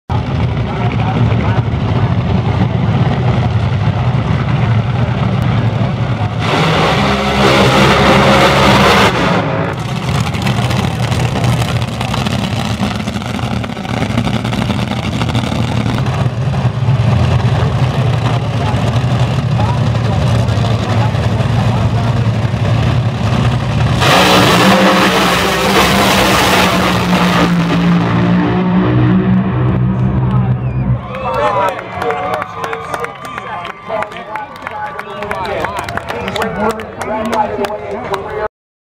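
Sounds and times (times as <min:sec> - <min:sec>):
dragster engines at full throttle: 0:00.1 - 0:33.4
crowd cheering and calling out: 0:29.9 - 0:38.5
crowd clapping: 0:30.2 - 0:38.5.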